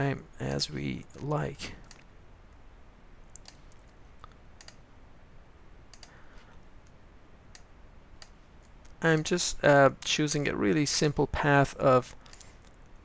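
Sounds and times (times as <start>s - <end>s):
low hiss: 0.0s - 13.0s
mouse and keyboard clicks: 3.4s - 4.0s, 5.9s - 6.2s.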